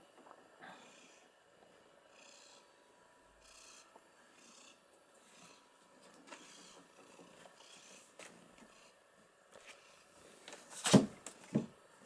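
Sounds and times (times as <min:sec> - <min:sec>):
cat purring: 0:02.1 - 0:02.8, 0:03.4 - 0:09.0.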